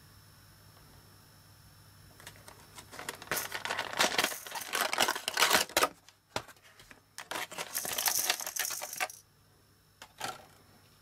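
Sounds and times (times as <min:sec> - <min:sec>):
plastic packaging crinkling: 0:02.2 - 0:09.1.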